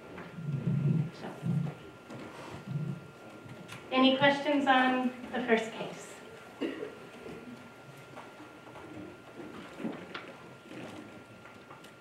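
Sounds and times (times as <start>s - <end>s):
faint muffled murmurs: 0.0s - 12.0s.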